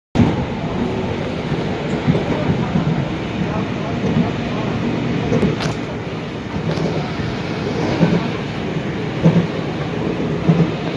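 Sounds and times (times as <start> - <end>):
train wheels rumbling on rails: 0.2 - 10.9.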